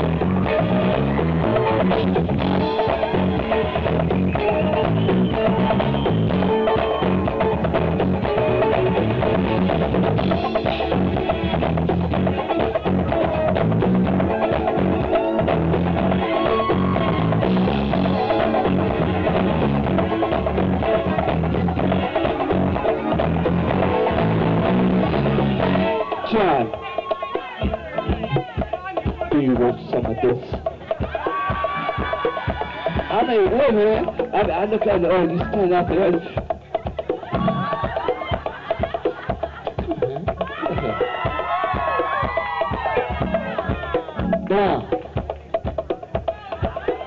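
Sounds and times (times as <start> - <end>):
drums and percussion: 0.0 - 47.0
guitar: 0.0 - 47.0
live band playing dance tune: 0.0 - 47.0.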